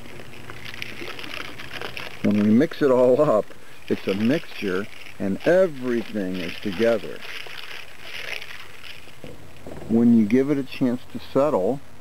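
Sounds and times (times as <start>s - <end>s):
liquid sloshing in a bottle: 0.0s - 10.0s.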